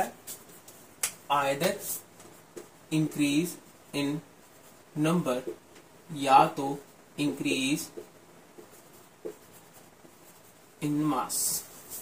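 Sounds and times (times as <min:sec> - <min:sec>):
marker pen scratching on whiteboard: 0:06.4 - 0:12.0.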